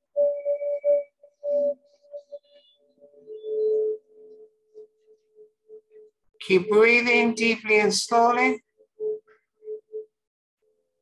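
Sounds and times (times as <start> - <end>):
ambient meditation music tone: 0.0 - 6.9.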